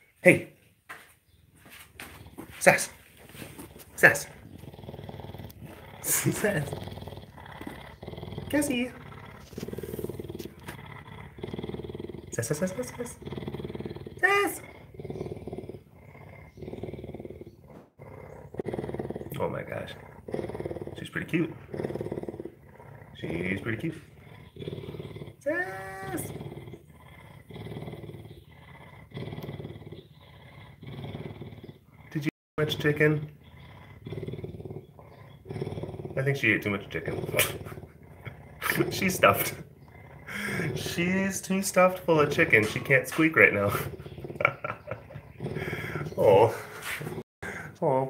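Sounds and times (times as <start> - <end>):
large cat purring: 2.0 - 47.6.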